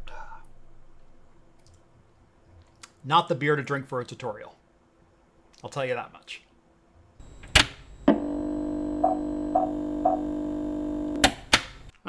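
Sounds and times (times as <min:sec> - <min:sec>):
short high beeps: 0:07.2 - 0:11.3
electronic drone: 0:07.2 - 0:11.4
sharp clicks: 0:07.2 - 0:11.9.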